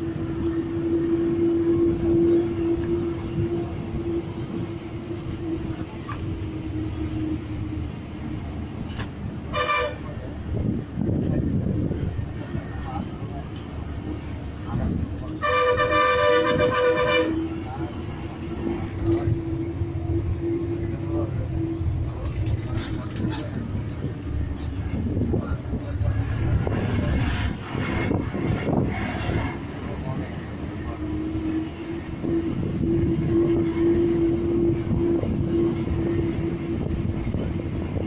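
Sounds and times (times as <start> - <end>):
bus engine droning: 0.0 - 38.0
vehicle horn blasts: 9.5 - 10.1, 15.4 - 17.4.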